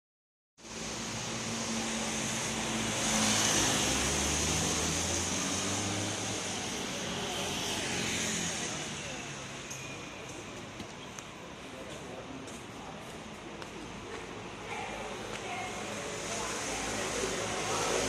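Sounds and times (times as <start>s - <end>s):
tyres hissing on wet road: 0.6s - 10.6s, 14.6s - 18.0s.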